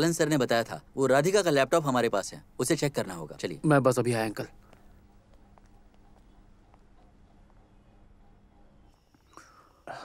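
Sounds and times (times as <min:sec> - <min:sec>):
faint low hum: 0:00.0 - 0:10.0
soft breathy sound: 0:09.2 - 0:10.0.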